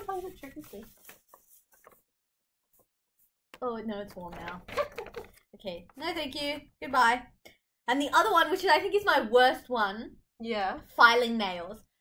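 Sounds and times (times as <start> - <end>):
paper rustling and scraping: 0.0 - 3.4.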